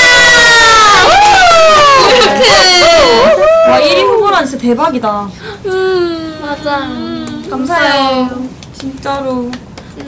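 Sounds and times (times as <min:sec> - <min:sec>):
women squealing and cheering: 0:00.0 - 0:04.2.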